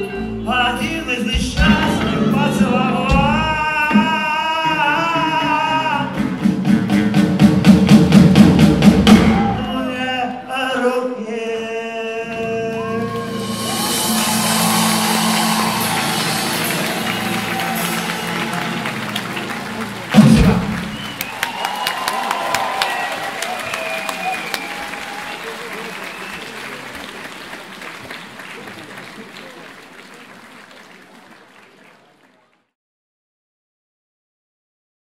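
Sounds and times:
live band playing instrumental: 0.0 - 9.6, 13.0 - 22.0
audience applauding: 13.0 - 32.7.

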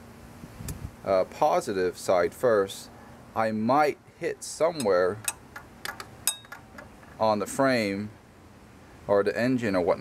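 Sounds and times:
socket ratchet clicks: 4.8 - 7.0
short metallic ring: 6.2 - 6.7.

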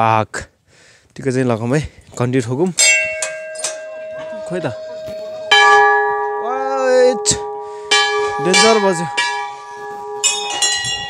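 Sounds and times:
brass bells ringing: 2.8 - 11.0.

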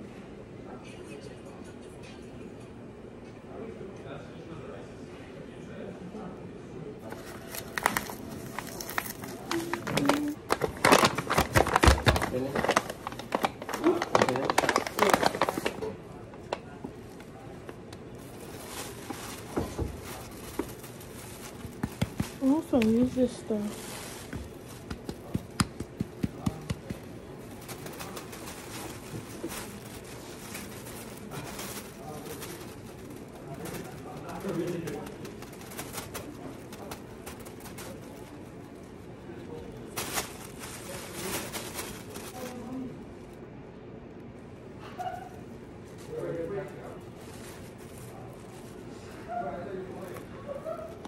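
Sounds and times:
plastic bag crinkling: 7.0 - 43.5, 45.0 - 51.0.

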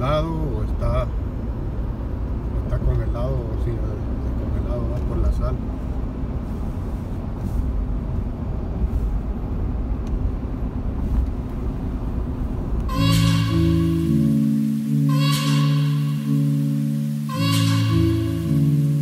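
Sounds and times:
road and engine rumble: 0.0 - 19.0
background music: 12.9 - 19.0.

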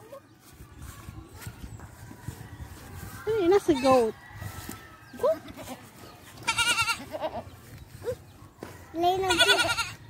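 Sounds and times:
goat bleating: 5.4 - 7.6, 9.2 - 10.0.

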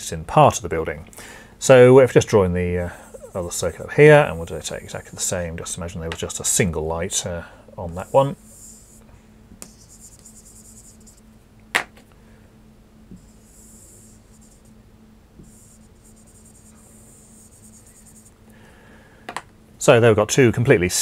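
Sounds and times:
marker pen scratching on whiteboard: 7.9 - 9.0, 9.6 - 11.2, 13.1 - 14.7, 15.4 - 18.3.

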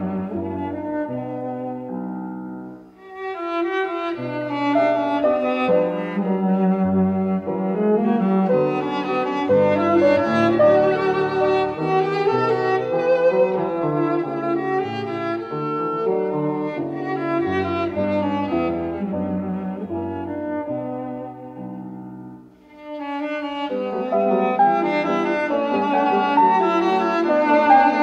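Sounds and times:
cello melody: 0.0 - 28.0
piano accompaniment: 0.0 - 28.0.

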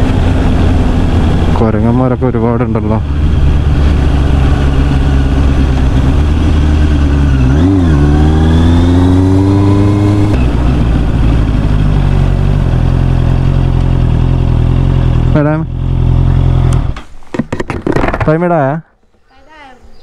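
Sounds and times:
motorcycle engine accelerating: 0.0 - 18.2.

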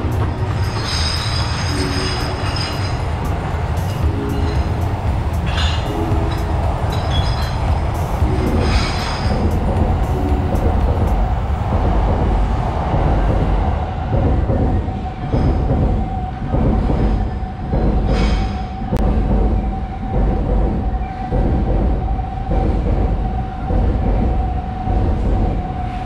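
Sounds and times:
wheel squeals: 0.0 - 19.0
steady whine: 0.0 - 26.0
train rumbling: 0.0 - 26.0.

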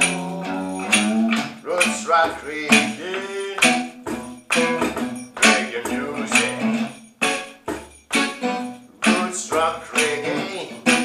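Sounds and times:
acoustic guitar strumming: 0.0 - 11.0
percussion with bright jingle: 0.0 - 11.0.

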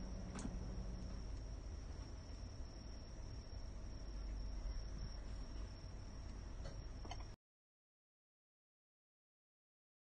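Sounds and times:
faint low rumble: 0.0 - 7.4.

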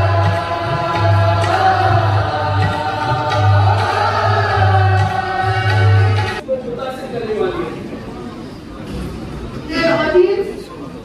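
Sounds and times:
group of voices singing: 0.0 - 6.4.

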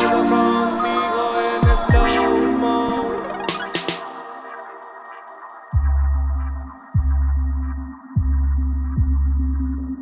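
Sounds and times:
deep bass notes: 5.8 - 10.0.

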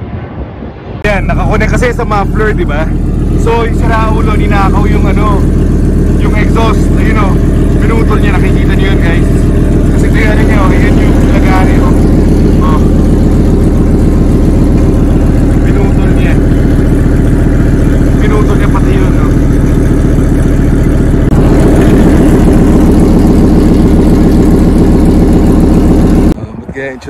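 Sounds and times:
unmuffled engine idling: 1.0 - 27.0.

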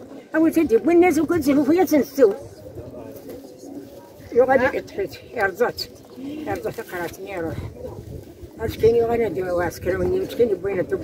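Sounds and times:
woman speaking: 0.3 - 2.4, 4.3 - 7.7, 8.6 - 11.0.

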